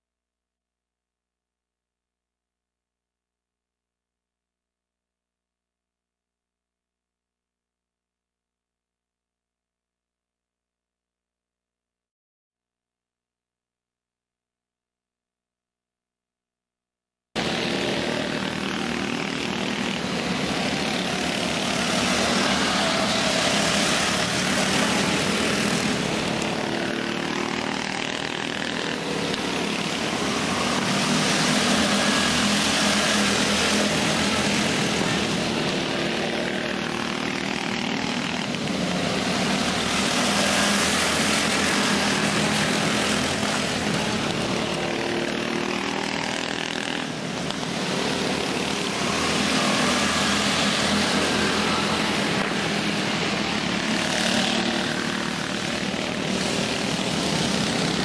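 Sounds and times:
go-kart engines racing: 17.4 - 58.0.

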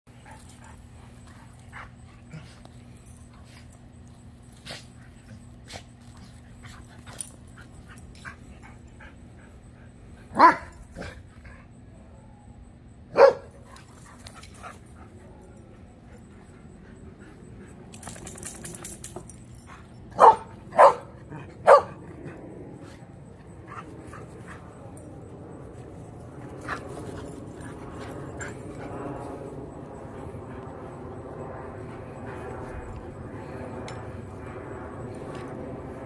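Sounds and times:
dog barking: 10.3 - 10.7, 13.1 - 13.5, 20.2 - 22.0
steady low rumble: 14.4 - 36.0.

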